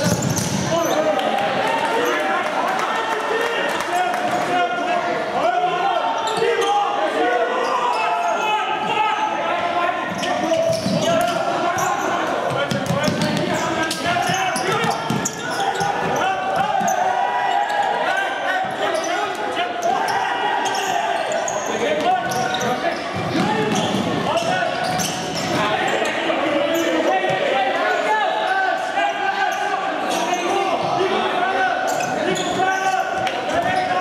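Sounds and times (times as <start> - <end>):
shouting voices in a hall: 0.0 - 34.0.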